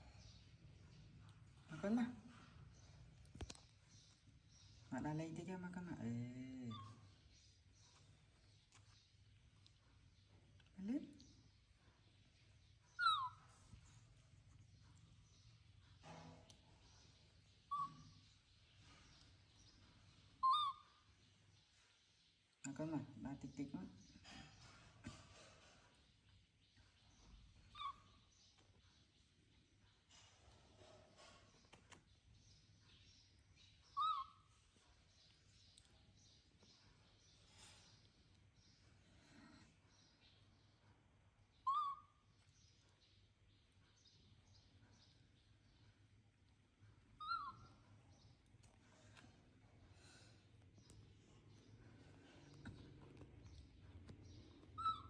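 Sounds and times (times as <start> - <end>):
baby monkey squeaking: 6.7 - 7.0, 12.9 - 13.6, 17.7 - 18.2, 20.4 - 21.1, 27.6 - 28.3, 33.8 - 34.6, 41.6 - 42.3, 47.2 - 47.9, 54.8 - 55.0.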